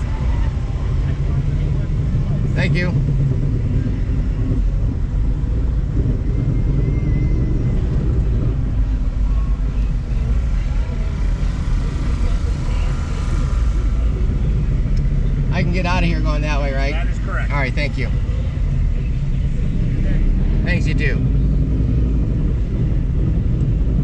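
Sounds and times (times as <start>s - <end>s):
car engine idling: 0.0s - 24.0s.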